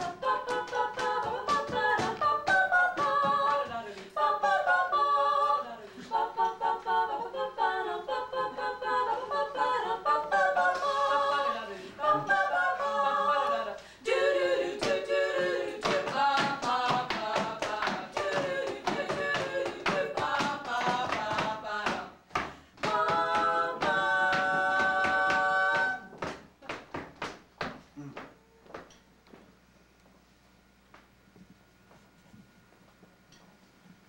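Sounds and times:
hand claps in rhythm: 0:00.0 - 0:04.2, 0:14.8 - 0:28.9
a cappella voices singing: 0:00.0 - 0:26.3.

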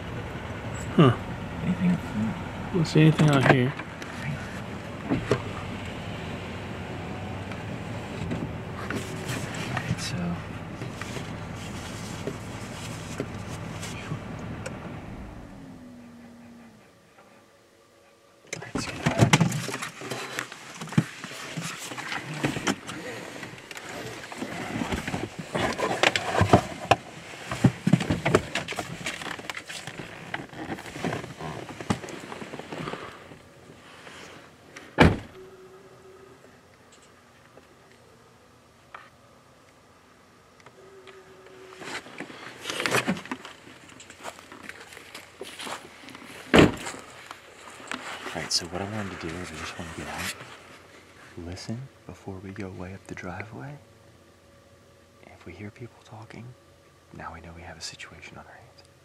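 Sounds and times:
truck engine idling: 0:00.0 - 0:17.4
rustling and clicking in cab: 0:02.9 - 0:06.0, 0:07.4 - 0:17.4, 0:18.4 - 0:35.4, 0:40.6 - 0:51.8
truck door shutting: 0:34.8 - 0:35.4, 0:46.5 - 0:47.0.

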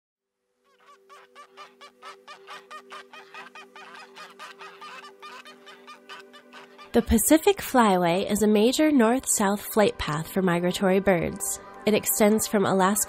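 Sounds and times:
ducks quacking: 0:00.7 - 0:07.4
low music chord: 0:03.6 - 0:13.0.

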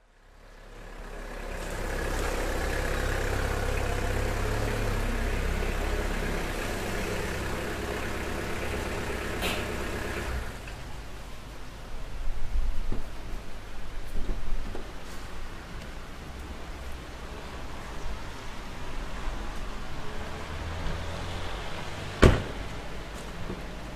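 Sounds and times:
car engine running slowly: 0:00.0 - 0:11.2.

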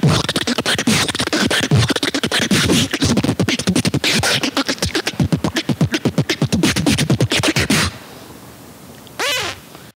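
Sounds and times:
beatboxer vocal call: 0:00.0 - 0:08.0
faint background noise: 0:00.0 - 0:10.0.

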